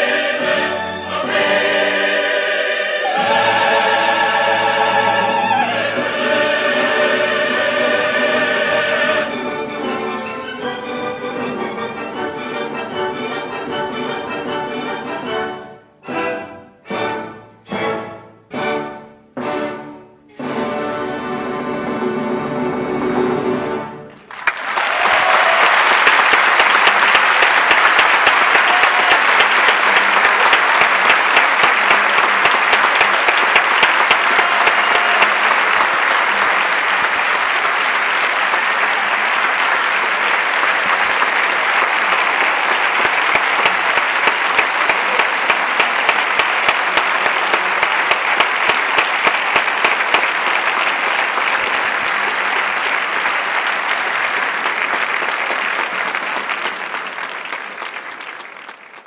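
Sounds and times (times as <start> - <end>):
audience applauding: 24.1 - 59.0.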